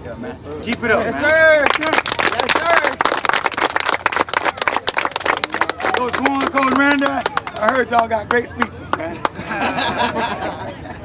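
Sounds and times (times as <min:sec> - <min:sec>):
people clapping: 0:01.2 - 0:09.8.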